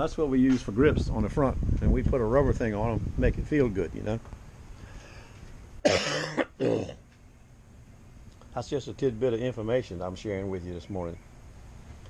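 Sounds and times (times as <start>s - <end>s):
man coughing harshly: 5.8s - 7.0s
man speaking: 8.6s - 11.2s.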